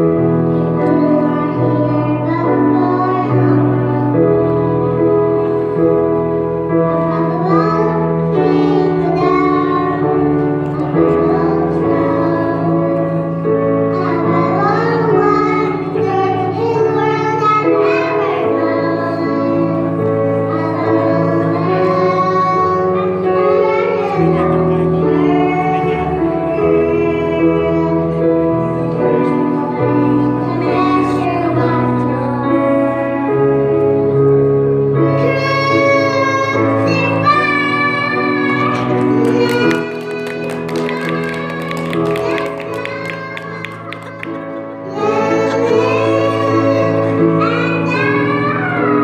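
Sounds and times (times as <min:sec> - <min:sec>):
electronic keyboard accompaniment: 0:00.0 - 0:49.0
girl and boy singing: 0:07.1 - 0:13.1, 0:13.9 - 0:19.9, 0:35.2 - 0:49.0.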